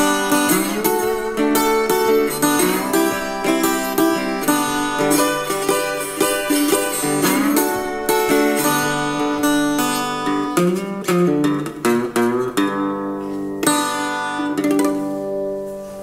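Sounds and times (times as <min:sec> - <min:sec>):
acoustic guitar playing blues: 0:00.0 - 0:16.0.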